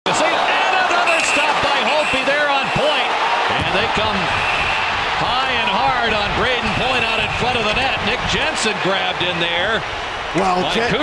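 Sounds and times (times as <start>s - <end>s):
crowd of voices: 0.1s - 11.0s.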